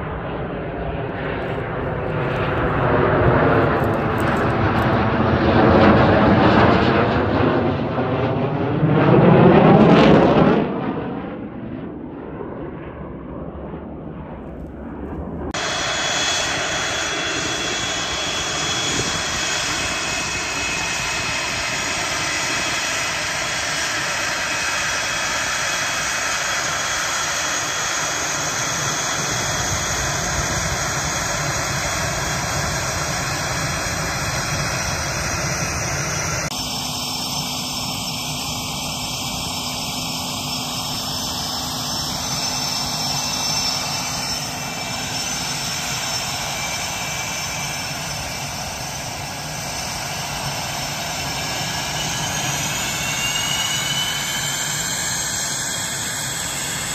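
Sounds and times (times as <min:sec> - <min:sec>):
jet engines whining and roaring: 0:00.0 - 0:56.9.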